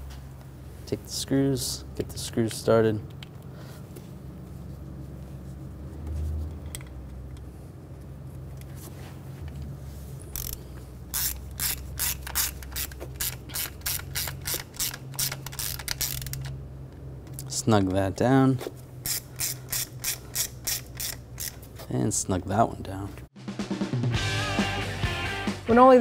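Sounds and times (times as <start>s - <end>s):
ratchet clicking: 10.3s - 16.6s, 19.0s - 21.7s.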